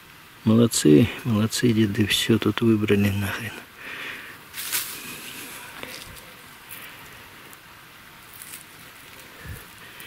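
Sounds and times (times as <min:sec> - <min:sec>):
hands rummaging through soil: 0:04.5 - 0:07.6, 0:08.2 - 0:10.0.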